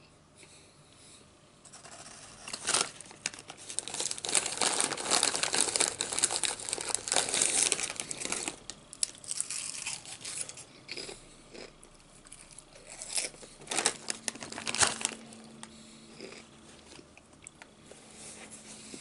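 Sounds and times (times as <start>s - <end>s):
chip bag crinkling: 1.7s - 17.6s.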